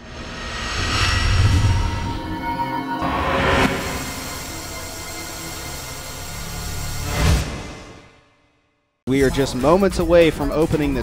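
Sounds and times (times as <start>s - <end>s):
rumbling drone with held tones: 0.0s - 7.3s
cinematic hit: 0.0s - 8.1s.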